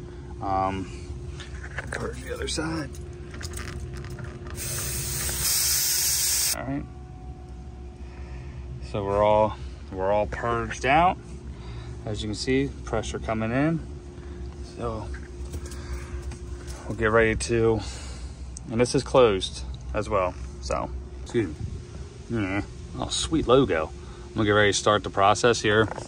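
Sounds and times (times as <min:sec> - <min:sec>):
faint steady hum: 0:00.0 - 0:26.0
gas hissing from a hose: 0:04.5 - 0:06.6
wind rumble on microphone: 0:21.5 - 0:22.1.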